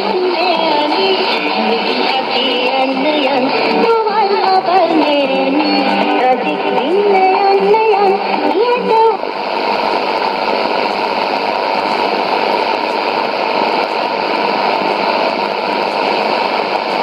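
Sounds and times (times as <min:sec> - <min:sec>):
radio static hiss: 0:00.0 - 0:17.0.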